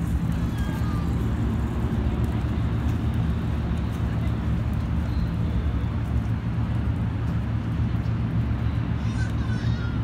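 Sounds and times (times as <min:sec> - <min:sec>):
outdoor city rumble: 0:00.0 - 0:10.0.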